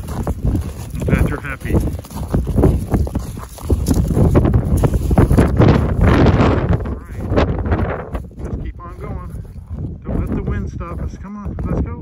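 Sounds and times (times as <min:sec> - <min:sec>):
footsteps crunching in snow: 0:00.0 - 0:11.9
wind on microphone: 0:00.0 - 0:12.0.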